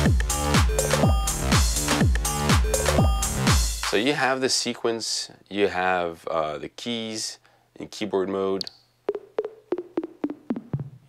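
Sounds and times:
synth notes stepping down: 0.0 - 3.8.

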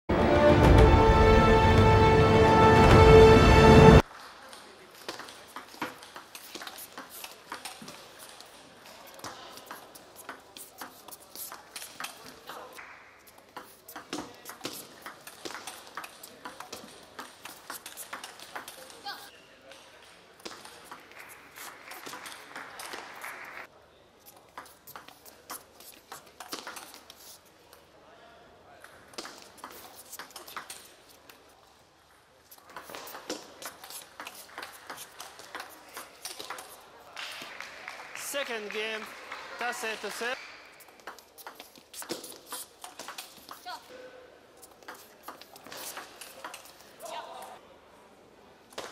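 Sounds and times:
table tennis ball clicking off rackets: 40.9 - 43.6.

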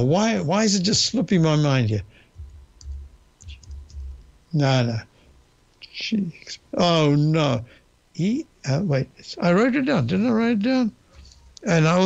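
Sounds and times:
soft low thuds: 2.0 - 4.6.

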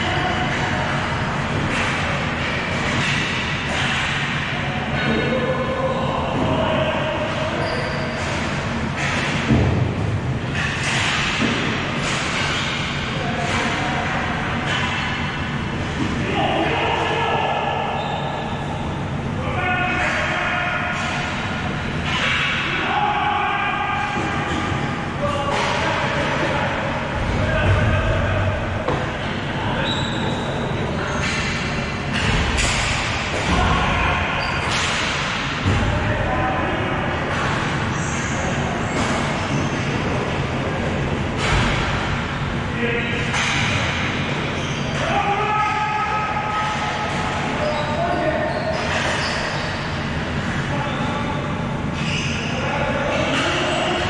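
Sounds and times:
players shouting in a hall: 0.0 - 9.5, 10.6 - 31.6, 42.8 - 54.0
low hall rumble: 0.0 - 54.0.

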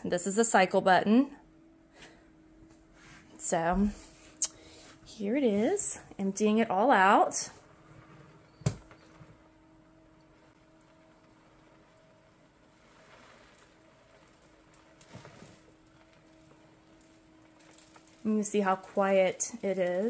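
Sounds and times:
motor humming: 1.4 - 20.0.

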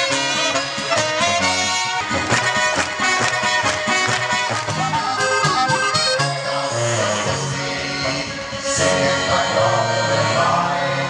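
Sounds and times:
accordion: 0.0 - 11.0
bass line: 0.0 - 11.0
clarinet: 0.0 - 11.0.

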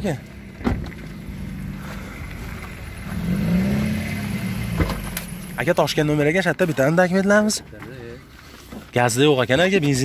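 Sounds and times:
car engine idling and revving: 0.0 - 6.7.

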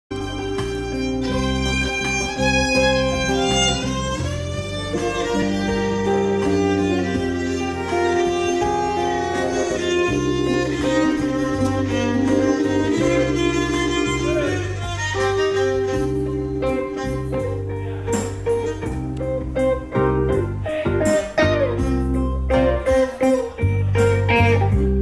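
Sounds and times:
violin melody: 0.1 - 19.4
bass notes: 0.1 - 25.0
electric guitar: 0.1 - 25.0
stage piano notes: 0.1 - 25.0.

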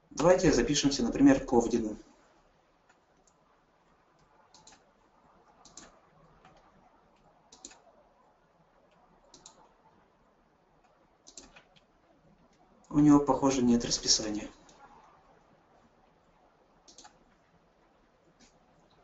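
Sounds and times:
computer mouse clicks: 4.2 - 4.9, 5.5 - 7.9, 8.9 - 9.8, 10.8 - 11.9, 16.8 - 17.5.

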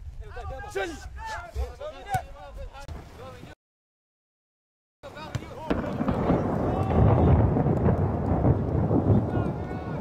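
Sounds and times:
wind buffeting microphone: 5.6 - 10.0.

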